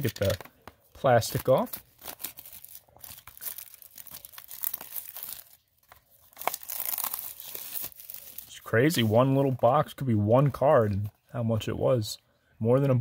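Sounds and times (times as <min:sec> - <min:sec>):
plastic shrink wrap tearing: 0:00.0 - 0:00.5, 0:01.2 - 0:08.6.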